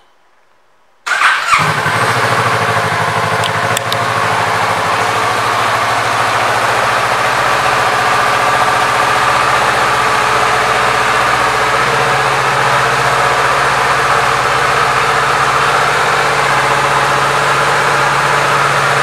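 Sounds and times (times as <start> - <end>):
motorcycle engine idling: 1.1 - 19.0.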